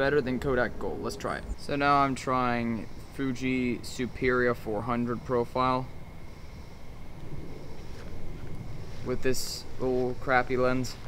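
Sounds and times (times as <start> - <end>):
faint steady high tone: 0.0 - 11.0
low outdoor rumble: 0.0 - 11.0.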